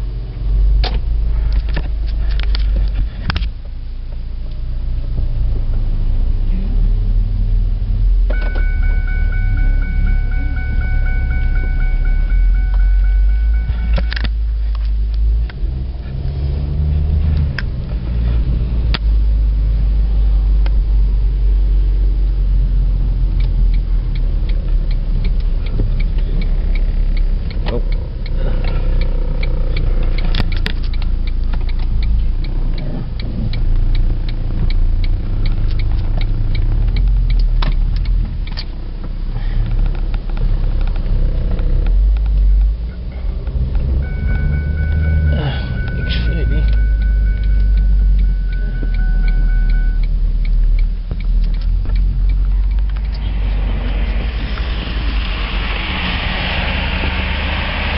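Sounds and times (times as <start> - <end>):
car cabin rumble: 0.0 - 57.9
sharp clicks and knocks: 0.8 - 4.6, 8.3 - 16.4, 23.0 - 44.1, 45.8 - 57.2.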